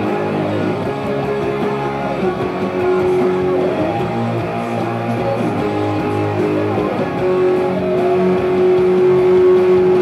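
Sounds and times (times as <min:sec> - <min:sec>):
electric guitar through amplifier: 0:00.0 - 0:10.0.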